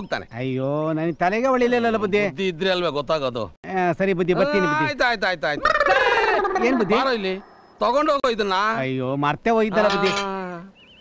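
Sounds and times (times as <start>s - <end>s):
man talking excitedly: 0.0s - 10.2s.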